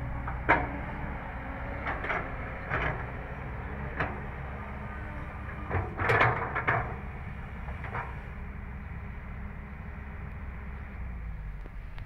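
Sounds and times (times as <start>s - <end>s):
excavator diesel engine droning: 0.0s - 12.0s
hydraulics: 0.0s - 12.0s.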